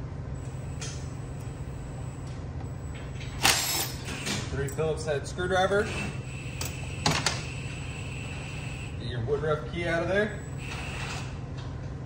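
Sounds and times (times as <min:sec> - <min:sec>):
low shop hum: 0:00.0 - 0:12.0.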